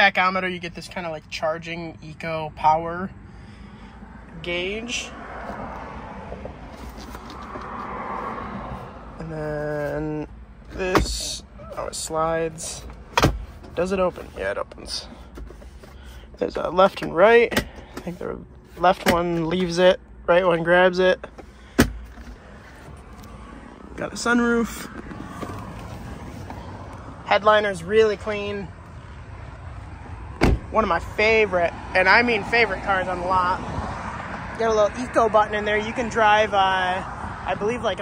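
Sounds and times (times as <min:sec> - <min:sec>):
car cabin rumble and hiss: 0:03.9 - 0:33.6.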